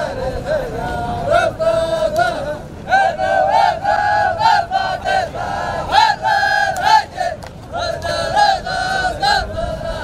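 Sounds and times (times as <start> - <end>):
men's group chant: 0.0 - 10.0.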